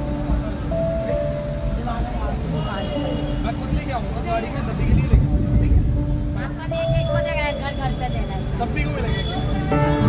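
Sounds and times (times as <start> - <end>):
road traffic rumble: 0.0 - 10.0
voices talking: 0.0 - 10.0.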